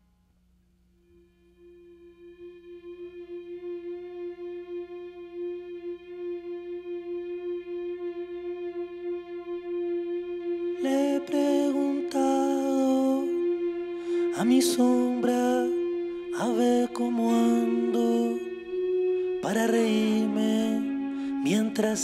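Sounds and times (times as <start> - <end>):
held instrumental chord: 1.1 - 22.0
sustained instrumental note: 1.1 - 22.0.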